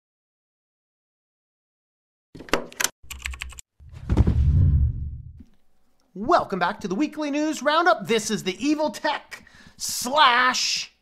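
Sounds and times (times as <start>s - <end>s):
keyboard typing clicks: 2.5s - 3.6s
deep loud sound: 3.8s - 5.4s.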